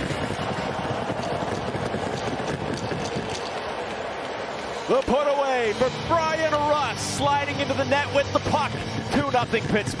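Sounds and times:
hockey arena crowd noise: 0.0s - 10.0s.

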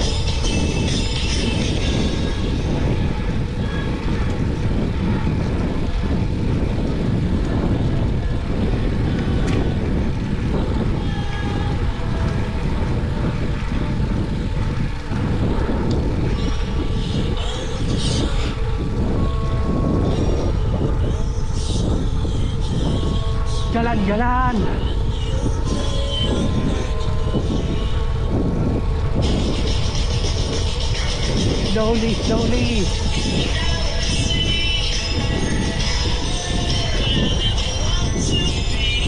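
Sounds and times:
bicycle tyre rumble on pavement: 0.0s - 39.0s
wind rush on microphone: 0.0s - 39.0s.

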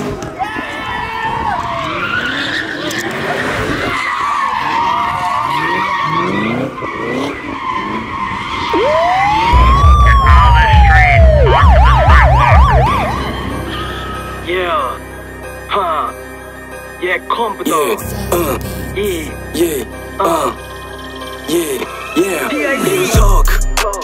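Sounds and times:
siren wailing and yelping: 1.3s - 14.3s, 20.8s - 23.2s
tyres squealing: 1.7s - 9.5s, 17.6s - 23.2s
car engine revving: 2.1s - 15.7s
heavy low rumble: 9.5s - 15.6s.

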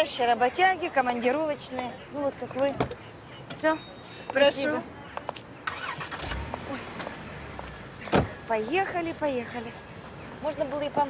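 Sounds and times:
car engine starting: 5.6s - 8.5s.

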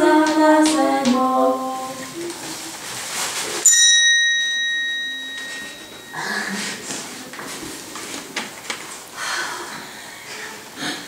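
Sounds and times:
faint rustling: 1.8s - 3.8s
bright chime ringing: 3.7s - 6.8s.

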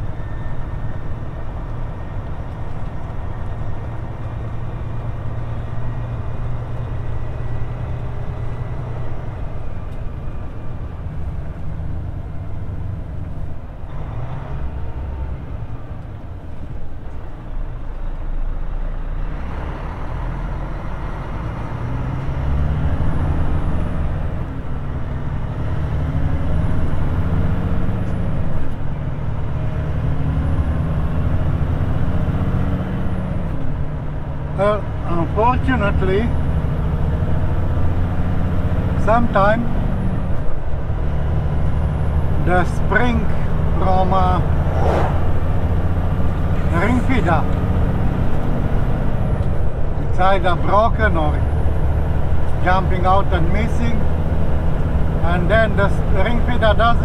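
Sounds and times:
road and tyre noise: 0.0s - 57.0s
truck diesel engine running: 0.0s - 57.0s.

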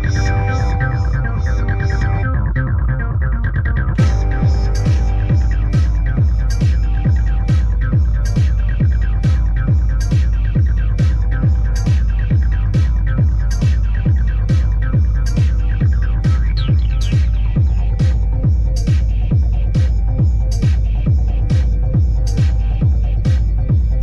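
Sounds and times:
low bass drone: 0.0s - 24.0s
crisp high percussion hits: 4.0s - 18.2s
kick drum thudding: 4.0s - 24.0s.

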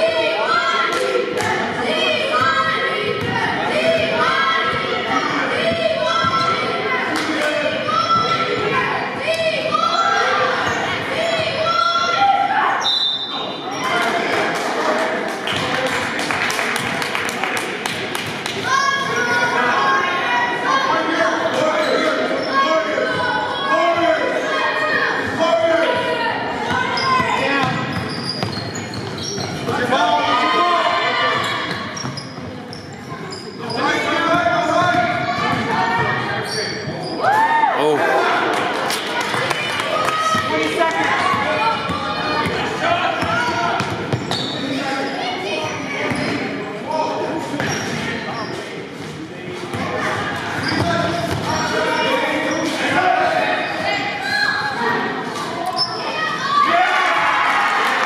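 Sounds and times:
voices echoing in hall: 0.0s - 58.0s
sneakers squeaking on floor: 5.7s - 6.8s, 8.0s - 11.6s, 21.5s - 24.0s, 26.6s - 29.9s, 31.2s - 37.3s, 41.2s - 52.9s, 53.5s - 56.4s.

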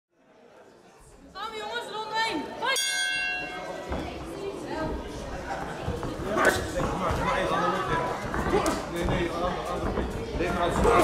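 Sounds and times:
chatter in echoing hall: 0.1s - 11.0s.

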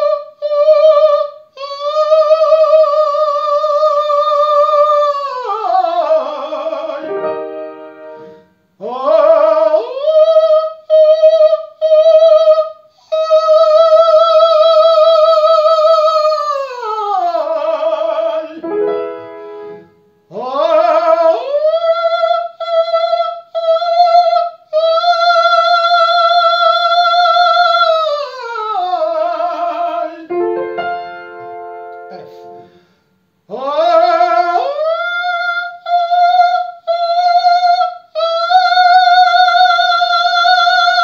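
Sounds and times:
piano chords: 7.0s - 8.5s, 18.5s - 20.1s, 30.3s - 32.9s
tenor singing high notes: 30.3s - 32.9s.

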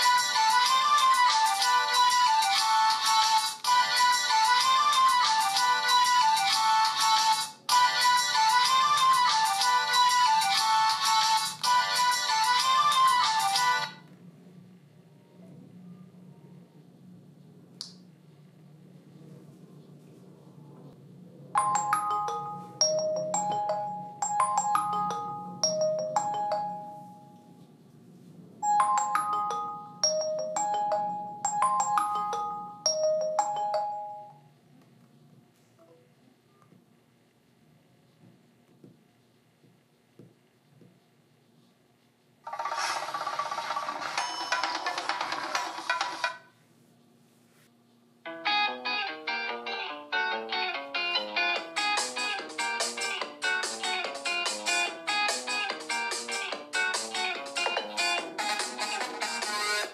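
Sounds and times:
smartphone ringtone melody: 0.0s - 14.0s, 21.6s - 27.6s, 28.6s - 34.5s.

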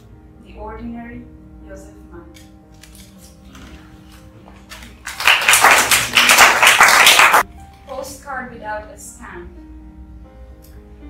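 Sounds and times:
audience applauding: 4.9s - 7.4s.

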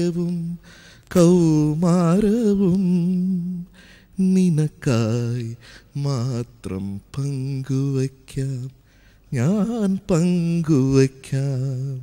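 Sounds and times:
man singing unaccompanied: 0.0s - 12.0s
breath: 0.6s - 1.1s, 3.7s - 4.2s, 5.6s - 5.9s, 8.8s - 9.3s.

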